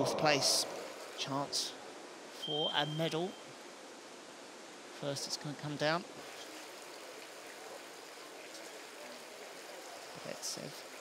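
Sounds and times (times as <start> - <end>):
running water hiss: 0.0 - 11.0.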